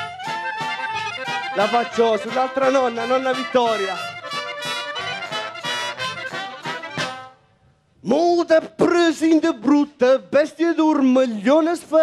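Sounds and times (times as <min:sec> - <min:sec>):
folk band with saxophones and horns: 0:00.0 - 0:07.8.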